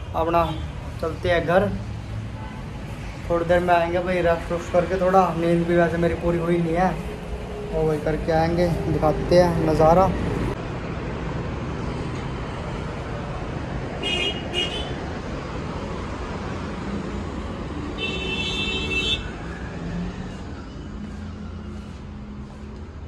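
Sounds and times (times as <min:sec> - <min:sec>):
road traffic noise: 0:00.0 - 0:23.0
vehicle horns honking: 0:14.0 - 0:15.0, 0:18.0 - 0:19.3.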